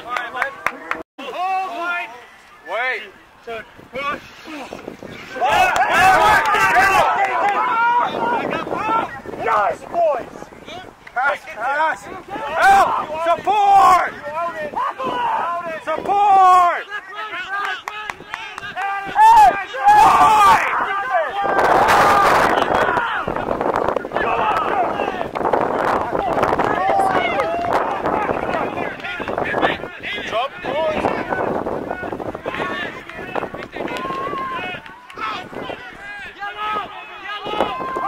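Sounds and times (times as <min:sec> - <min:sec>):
rugby players shouting: 0:05.3 - 0:23.4, 0:24.0 - 0:25.3, 0:26.0 - 0:38.0
rough microphone noise: 0:18.0 - 0:38.0.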